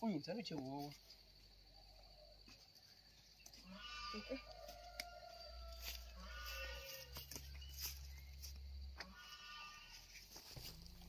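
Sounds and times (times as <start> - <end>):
faint drawn-out animal calls: 3.6 - 4.6, 5.4 - 7.9, 9.0 - 10.2.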